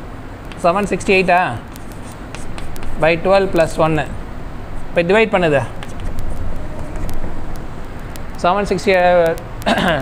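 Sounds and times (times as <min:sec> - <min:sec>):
chalk tapping on blackboard: 0:00.5 - 0:03.8, 0:05.5 - 0:08.4.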